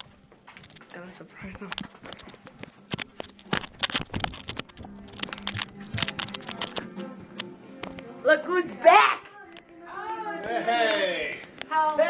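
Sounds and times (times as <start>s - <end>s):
footsteps: 0.0s - 8.1s
handheld camera handling: 1.7s - 8.0s.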